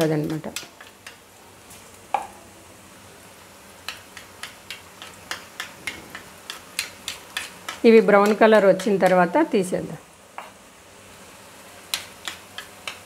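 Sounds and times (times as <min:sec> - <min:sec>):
batter sizzling in hot oil: 0:00.0 - 0:13.0.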